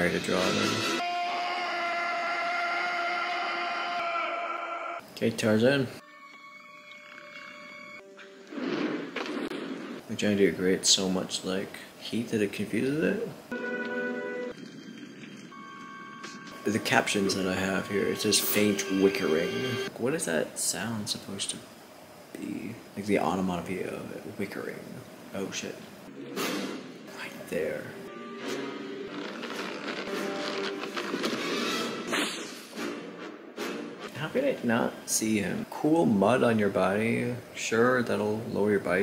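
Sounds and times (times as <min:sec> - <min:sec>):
film soundtrack music: 0:00.0 - 0:02.0, 0:06.0 - 0:10.0, 0:13.5 - 0:19.9, 0:26.1 - 0:34.2
high held note: 0:15.5 - 0:19.9
tense orchestral chord: 0:16.5 - 0:19.9.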